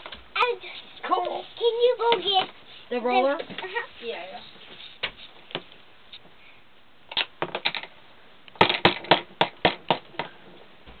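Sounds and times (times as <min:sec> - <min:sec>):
toy rolling pin knocking on plastic: 0:08.6 - 0:10.3.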